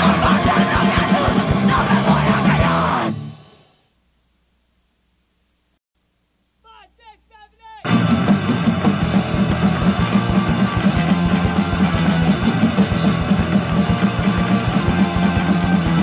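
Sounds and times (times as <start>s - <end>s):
punk band playing: 0.0s - 3.6s, 7.8s - 16.0s.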